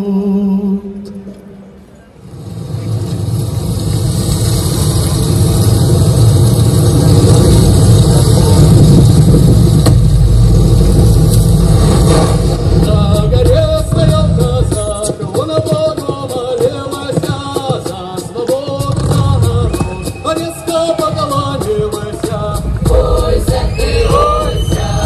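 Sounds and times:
music: 8.2s - 25.0s.

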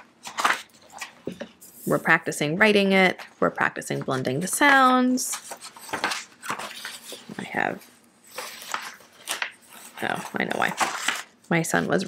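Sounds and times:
paper rustling: 0.0s - 2.1s, 3.1s - 11.4s
person speaking: 1.6s - 5.4s, 7.3s - 7.9s, 9.9s - 10.8s.

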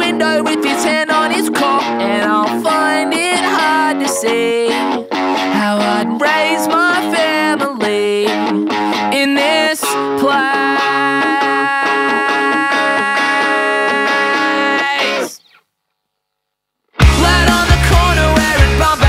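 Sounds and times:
distorted electric guitar rock: 0.0s - 15.6s, 16.9s - 19.0s.

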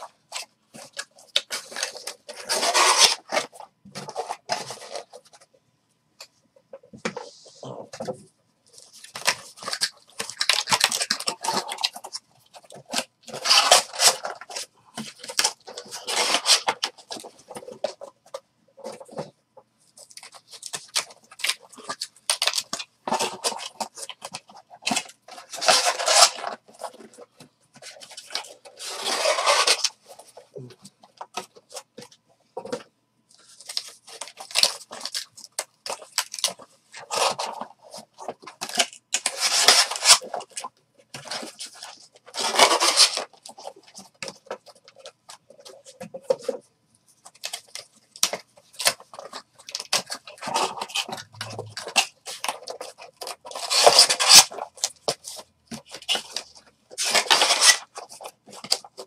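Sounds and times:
cardboard scraping and rubbing: 0.8s - 5.3s, 23.1s - 30.4s, 36.0s - 40.6s, 41.2s - 46.6s, 48.9s - 59.0s.

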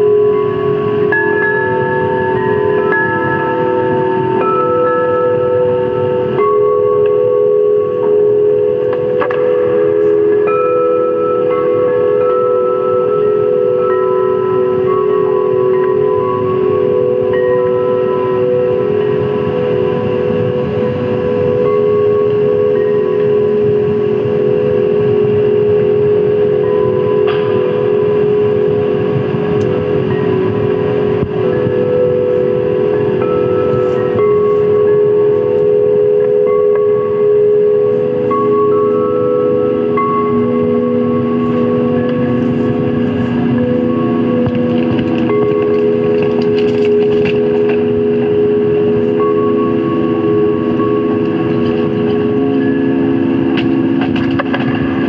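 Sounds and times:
electronic drone music: 0.0s - 55.0s
rough hissing noise: 22.0s - 55.0s.

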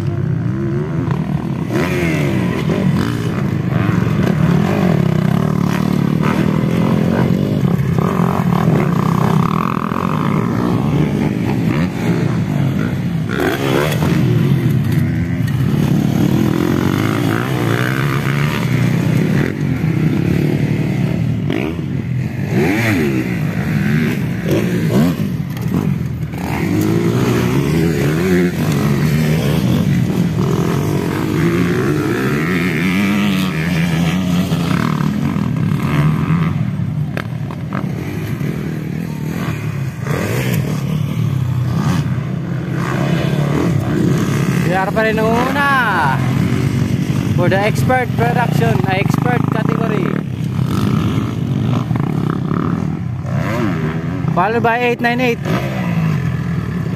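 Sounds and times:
dirt bike engines revving: 0.0s - 56.9s.

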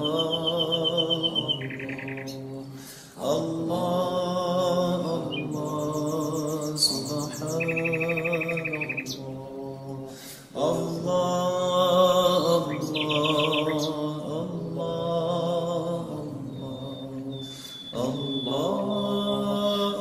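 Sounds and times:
birdsong chirps and trills: 0.0s - 20.0s
men chanting: 0.0s - 20.0s.

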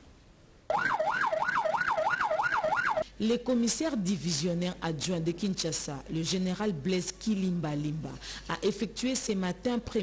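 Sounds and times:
police siren yelping: 0.7s - 3.0s.

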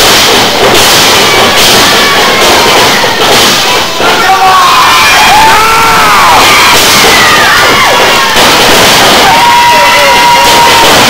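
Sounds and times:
crowd cheering and shouting: 0.0s - 11.0s.

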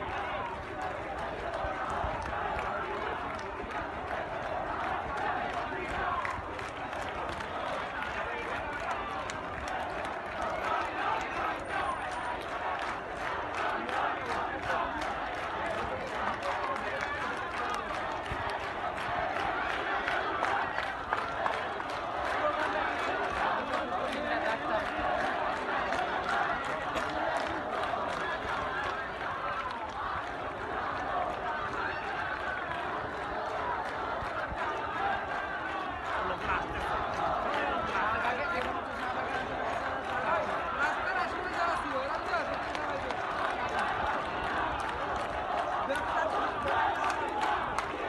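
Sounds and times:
crowd shouting and talking: 0.0s - 48.0s.

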